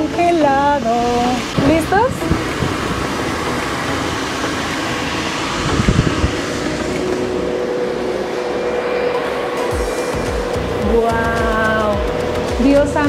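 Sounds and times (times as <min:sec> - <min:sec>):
fans rushing: 0:00.0 - 0:13.0.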